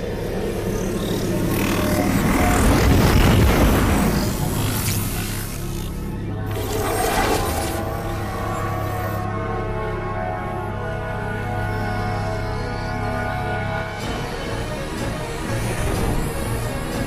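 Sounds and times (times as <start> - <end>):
dark ominous film music: 0.0 - 17.0
steady low drone: 0.0 - 17.0.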